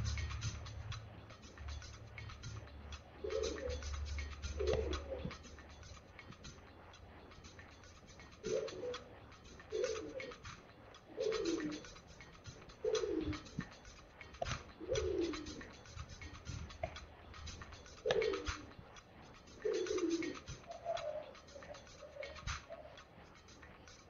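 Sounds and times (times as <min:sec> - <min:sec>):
bird cooing: 0:03.2 - 0:06.3, 0:08.2 - 0:18.8, 0:19.4 - 0:23.1.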